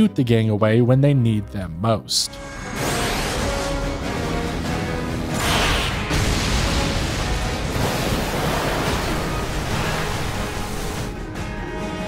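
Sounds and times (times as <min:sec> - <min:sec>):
rushing explosion blast: 0:05.3 - 0:11.1.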